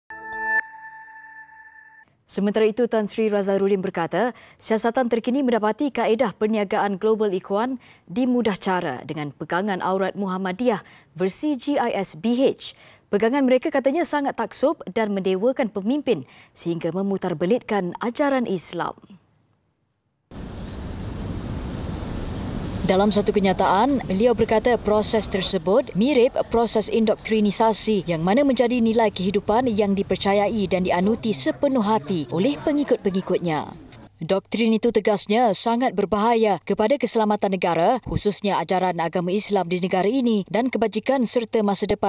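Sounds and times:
bright ringing tone: 0.1 - 2.0
synth chord: 0.1 - 2.0.

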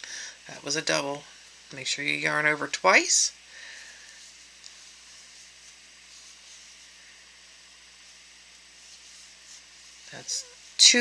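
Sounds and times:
room tone hiss: 0.0 - 11.0.

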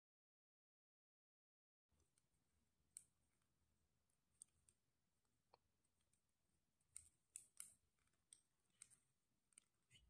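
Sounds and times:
knitting needles clicking: 2.0 - 3.5, 4.3 - 10.0.

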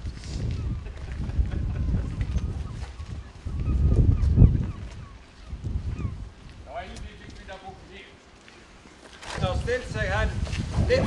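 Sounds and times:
wind rumbling on microphone: 0.0 - 11.0
faint high wavering calls: 2.3 - 6.3.

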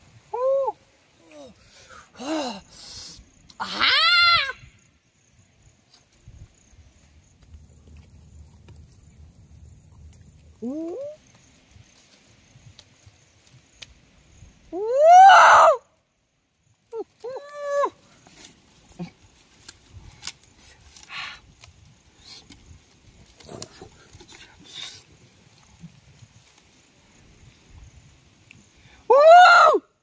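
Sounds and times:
man's wordless ooh call: 0.3 - 1.6
rustling twigs and leaves: 5.2 - 14.6, 16.6 - 28.8.

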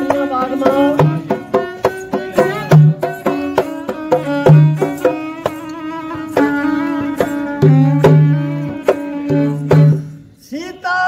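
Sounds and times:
bowed string sliding melody: 0.0 - 10.2
hand drum beat: 0.0 - 10.2.

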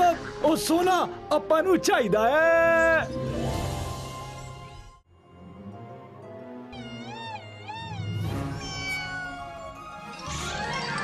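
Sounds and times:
background music: 0.0 - 11.0
cartoon cat yowl: 6.9 - 9.8.

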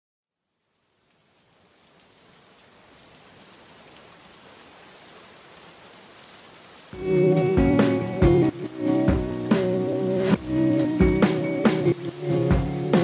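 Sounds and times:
steady rain patter: 0.3 - 13.0.

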